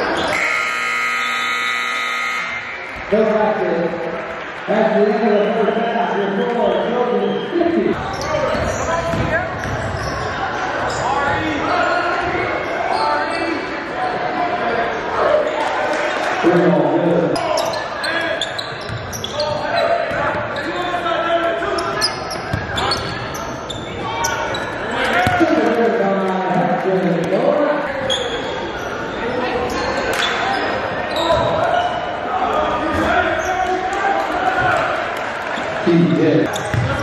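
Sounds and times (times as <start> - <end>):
voices of players and spectators: 0.0 - 37.0
basketball bouncing on hardwood: 36.7 - 37.0.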